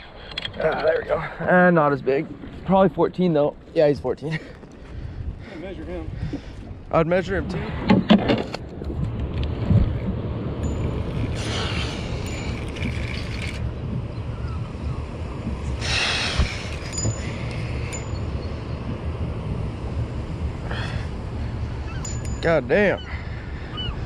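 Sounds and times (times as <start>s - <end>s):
wind rumble on microphone: 4.7s - 24.0s
water lapping at hull: 7.6s - 24.0s.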